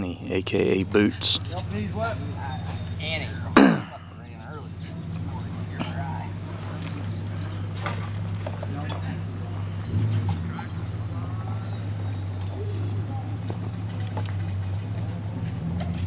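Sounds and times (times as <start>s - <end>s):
faint murmured voices: 0.0s - 16.0s
steady low hum: 0.0s - 16.0s
dogs whining: 1.2s - 16.0s.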